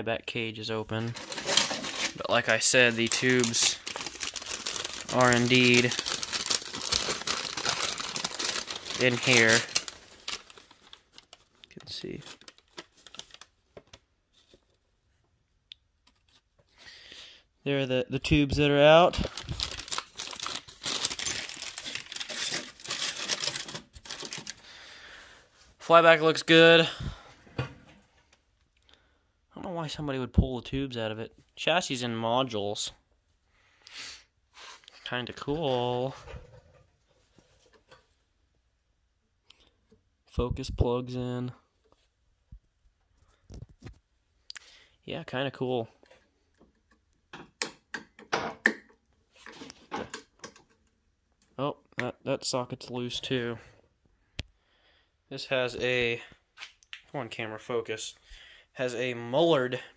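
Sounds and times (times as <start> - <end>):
paper bag crinkling: 1.0 - 13.5, 19.1 - 24.8.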